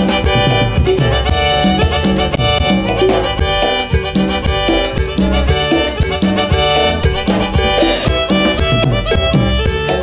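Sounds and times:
live dance band music: 0:00.0 - 0:10.0.

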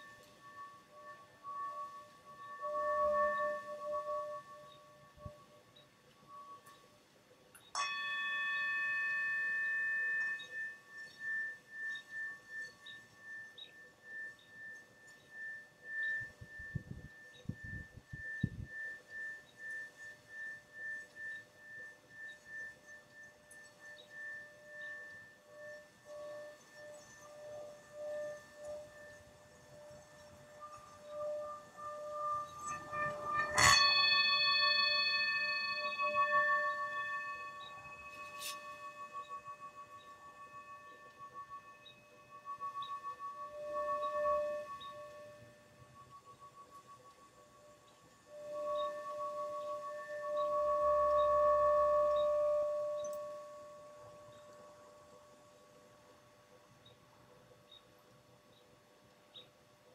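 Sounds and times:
singing bowl ringing: 0:00.0 - 0:59.5.

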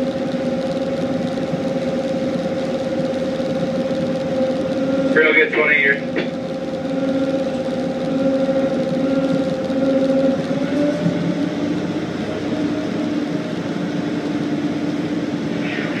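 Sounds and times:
tugboat diesel engines droning: 0:00.0 - 0:16.0.

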